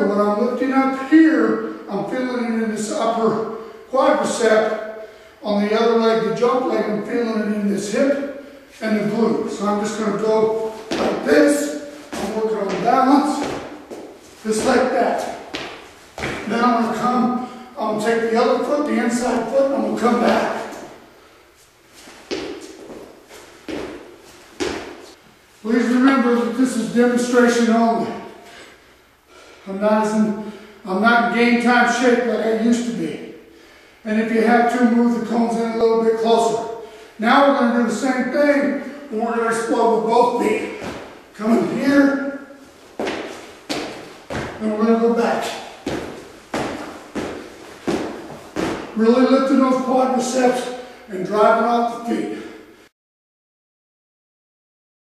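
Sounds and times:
shoes landing on concrete: 0:10.6 - 0:17.0, 0:22.0 - 0:25.2, 0:40.6 - 0:41.2, 0:42.8 - 0:44.6, 0:45.4 - 0:49.0.

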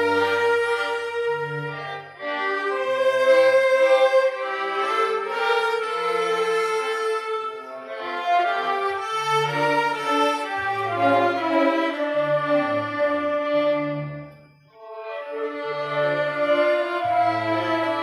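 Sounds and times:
string ensemble bowed notes: 0:00.0 - 0:18.0.

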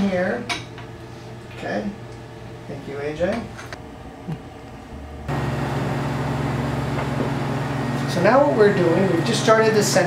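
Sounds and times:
centrifuge humming and whirring: 0:00.0 - 0:10.0.

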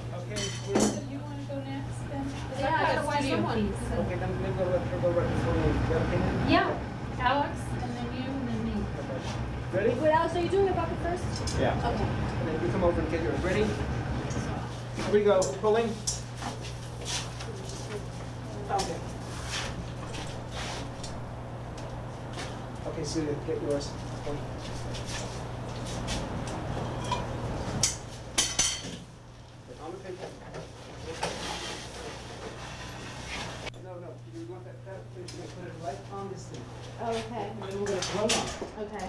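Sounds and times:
low hum and hiss: 0:00.0 - 0:39.0
people talking: 0:00.1 - 0:16.0, 0:17.4 - 0:19.1, 0:22.8 - 0:24.5, 0:33.8 - 0:39.0.

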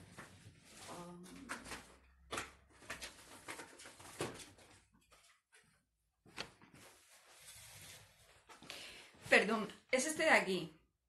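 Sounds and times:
objects being handled: 0:00.0 - 0:09.4.

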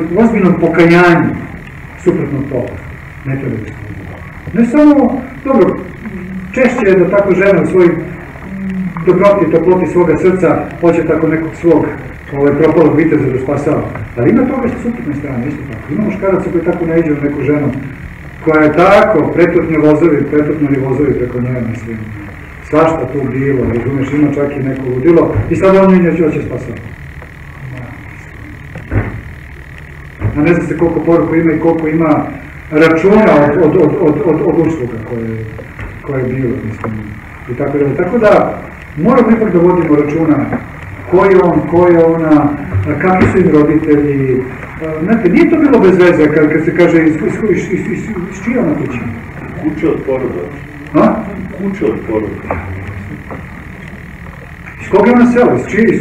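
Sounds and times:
man talking: 0:00.0 - 0:08.2, 0:09.0 - 0:27.0, 0:30.3 - 0:53.4, 0:54.7 - 0:56.0
low hum: 0:00.0 - 0:56.0
low room rumble: 0:00.0 - 0:56.0
thin high whine: 0:00.0 - 0:56.0.

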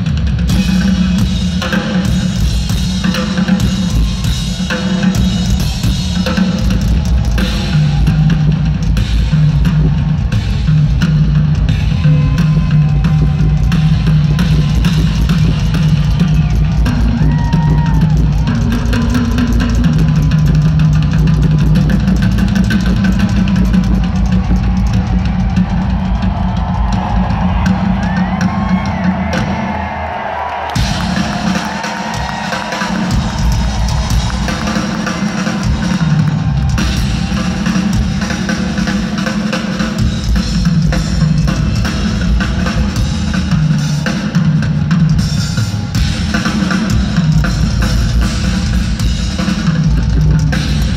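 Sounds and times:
rock drum solo: 0:00.0 - 0:50.9.

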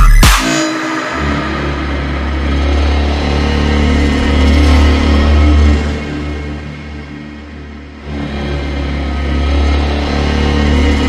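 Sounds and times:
dubstep track with heavy bass synth: 0:00.0 - 0:06.1.

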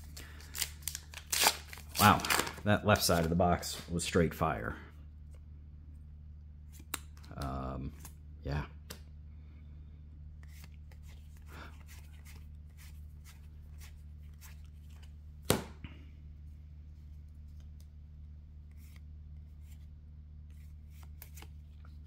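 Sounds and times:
trading cards rustling: 0:00.0 - 0:03.9, 0:10.4 - 0:15.2, 0:18.7 - 0:22.0
steady low hum: 0:00.0 - 0:22.0.

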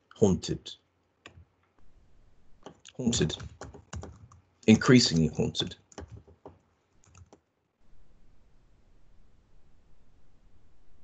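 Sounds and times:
keystrokes on computer keyboard: 0:02.6 - 0:04.4, 0:05.0 - 0:07.4.

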